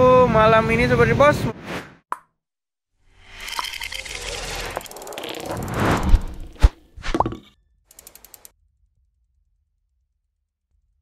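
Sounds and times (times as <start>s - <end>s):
short rising tone: 3.2s - 7.2s
swish: 4.6s - 7.2s
soft ticks: 7.9s - 8.5s.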